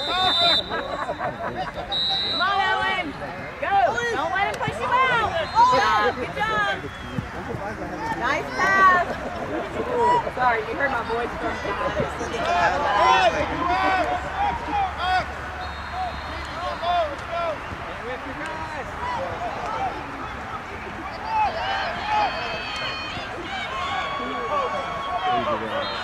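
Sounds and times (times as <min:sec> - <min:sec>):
distant shouts and calls: 0:11.3 - 0:26.0.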